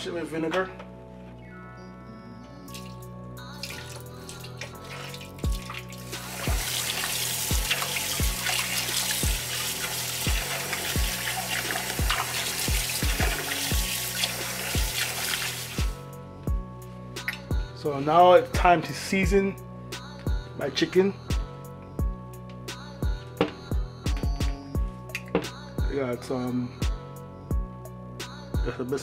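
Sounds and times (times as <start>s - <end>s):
background music with beat: 0.0s - 29.0s.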